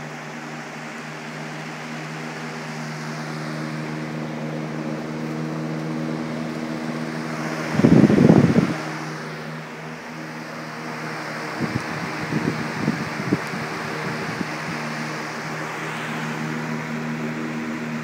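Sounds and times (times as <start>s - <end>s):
electric fans humming: 0.0s - 18.0s
rush of moving air: 0.0s - 18.0s.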